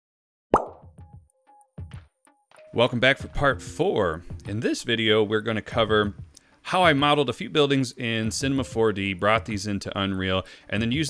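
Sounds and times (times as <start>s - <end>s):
sharp pop: 0.6s - 0.9s.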